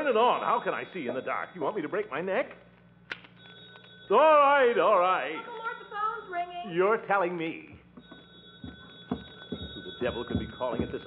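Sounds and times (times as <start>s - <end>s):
telephone bell ringing faintly: 8.0s - 11.0s.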